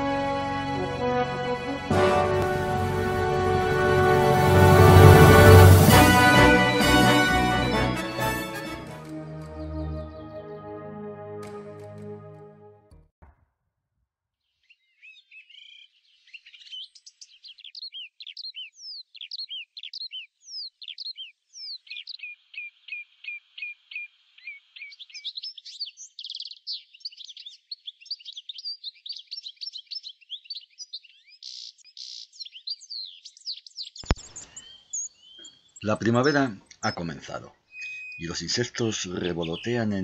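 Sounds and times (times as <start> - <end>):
birds chirping and whistling: 14.7 - 40.0.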